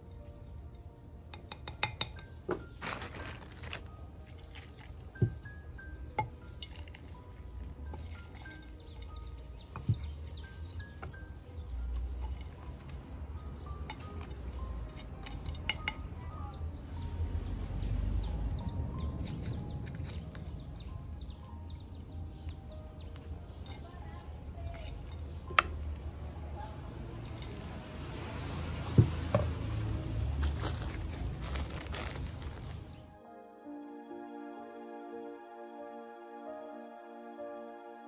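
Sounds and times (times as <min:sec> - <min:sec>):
flowerpots and tools knocking: 0:00.1 - 0:16.2, 0:18.9 - 0:26.0, 0:28.7 - 0:31.4
small birds chirping: 0:00.1 - 0:27.8, 0:30.6 - 0:33.2.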